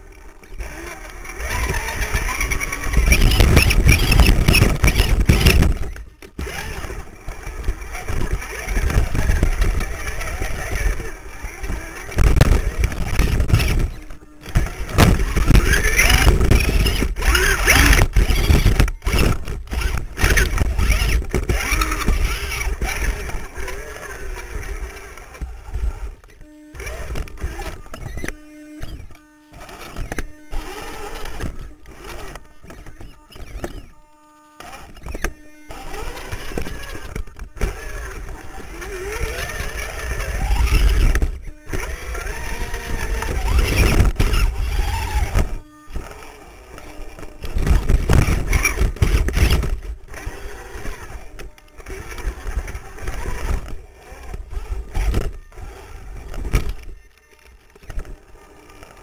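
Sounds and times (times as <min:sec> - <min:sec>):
electric motor and gear whine: 0:00.0 - 0:59.0
chassis knocking and scraping on rocks: 0:00.4 - 0:33.9, 0:34.6 - 0:57.0.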